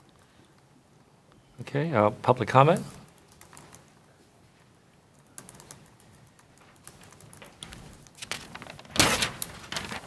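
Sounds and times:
typing on a laptop keyboard: 2.7 - 4.0, 5.1 - 8.9.

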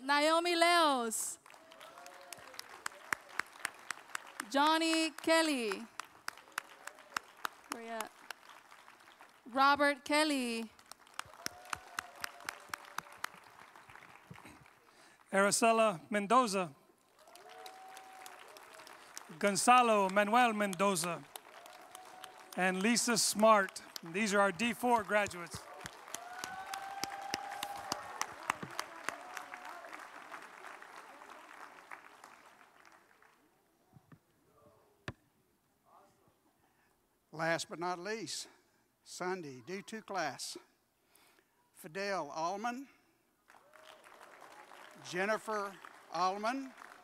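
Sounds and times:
light applause: 1.4 - 9.7, 10.5 - 33.6, 43.4 - 47.0.

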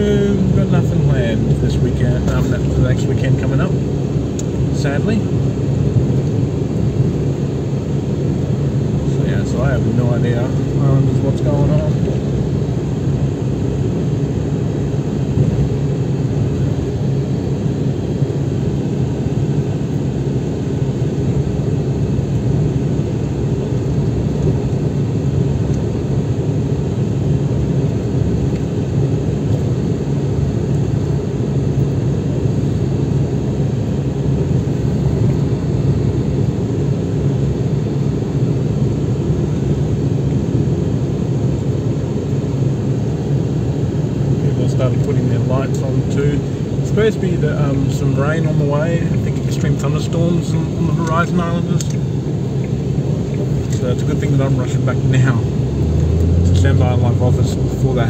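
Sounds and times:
vehicle engine and tyre drone: 0.0 - 58.0.

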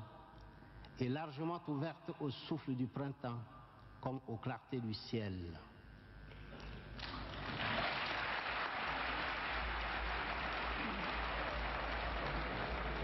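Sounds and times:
audience applauding: 7.0 - 13.0.

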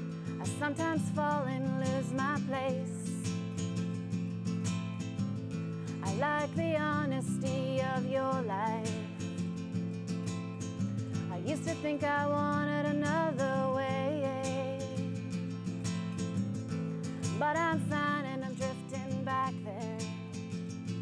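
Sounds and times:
acoustic guitar picking: 0.0 - 21.0.

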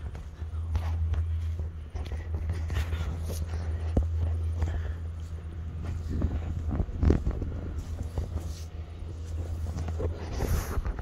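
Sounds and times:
footsteps crunching on gravel: 0.0 - 11.0
wind rumbling on microphone: 0.0 - 11.0.

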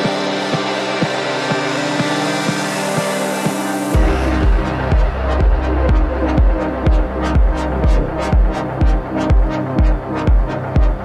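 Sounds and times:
synth drone: 0.0 - 11.0
kick drum: 0.5 - 11.0.

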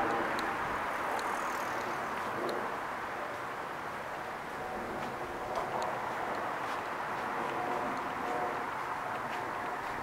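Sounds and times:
faint ticks: 1.1 - 2.6
vehicle passing: 4.3 - 10.0.

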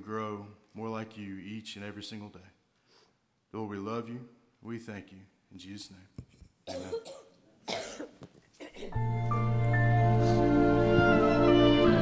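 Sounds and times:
person coughing: 6.7 - 9.0.

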